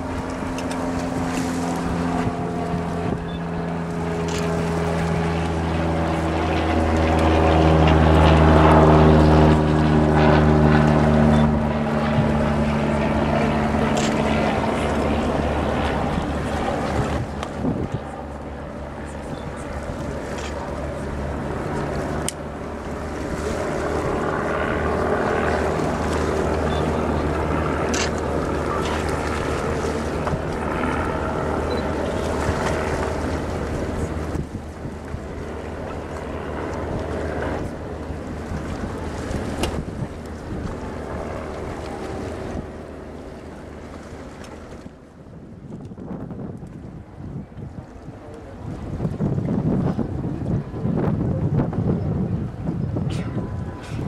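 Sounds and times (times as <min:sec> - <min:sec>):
boat engine hum: 0:00.0 - 0:54.0
wind buffeting microphone: 0:00.0 - 0:54.0.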